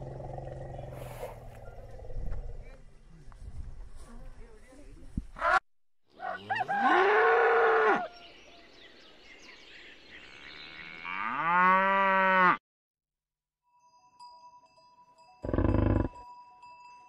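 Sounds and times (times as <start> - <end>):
cattle mooing: 10.5 - 12.6, 15.4 - 16.2.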